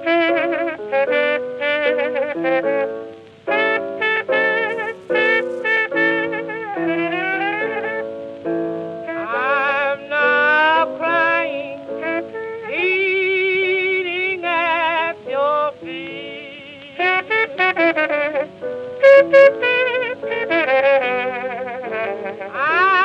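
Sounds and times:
cornet playing vibrato melody: 0:00.0 - 0:15.5, 0:17.0 - 0:23.0
piano accompaniment: 0:00.0 - 0:23.0.

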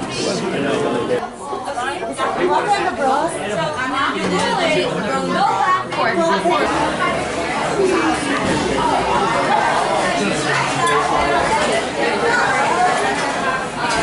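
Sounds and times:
chatter of many voices: 0:00.0 - 0:14.0.

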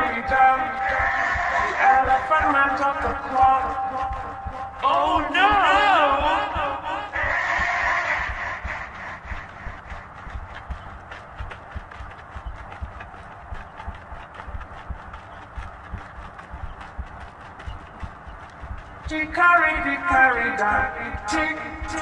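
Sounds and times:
low thuds: 0:00.0 - 0:22.0
rapid clicking and knocking: 0:00.0 - 0:22.0.

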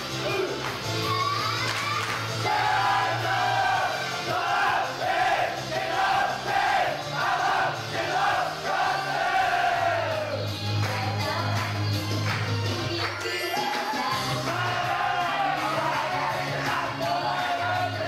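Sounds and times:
upbeat pop backing music: 0:00.0 - 0:18.0
audience chanting: 0:02.3 - 0:10.4, 0:13.8 - 0:18.0.

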